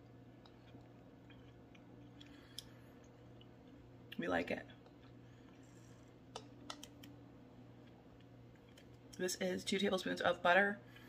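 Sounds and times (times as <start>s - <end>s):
steady low hum: 0.0s - 11.0s.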